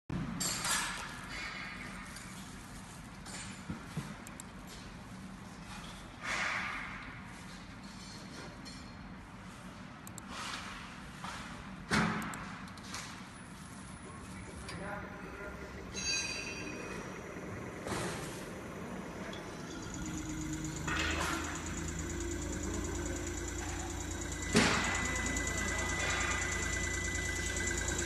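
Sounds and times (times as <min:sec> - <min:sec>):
machine hum: 0:14.4 - 0:28.0.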